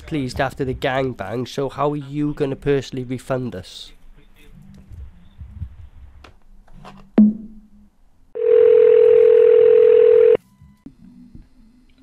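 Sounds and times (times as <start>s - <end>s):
telephone ringback tone: 8.4s - 10.4s
phone line hiss: 8.4s - 10.8s.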